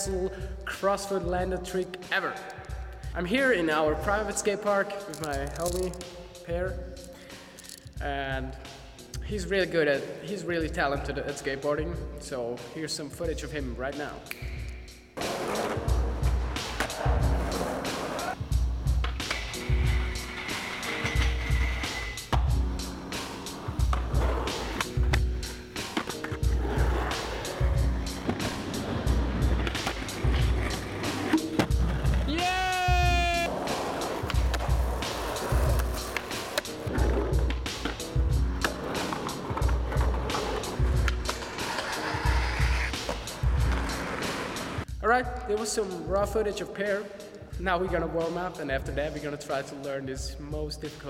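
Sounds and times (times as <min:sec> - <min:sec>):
background music with beat: 0:00.0 - 0:51.0
skateboard wheels rolling: 0:15.2 - 0:18.4, 0:19.0 - 0:44.8.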